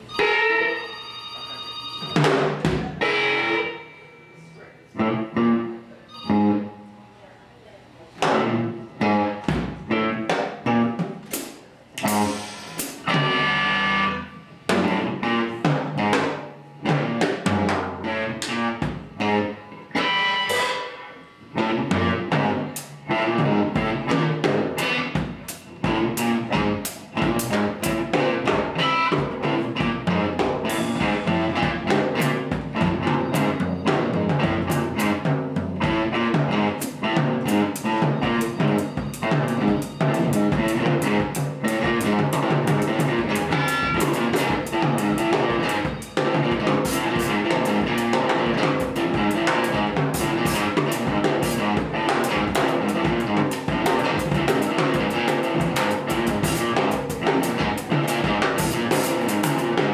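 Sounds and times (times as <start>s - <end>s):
electric guitar: 0.0s - 7.1s, 8.2s - 59.9s
drum kit with cymbals: 2.0s - 4.4s, 8.2s - 59.9s.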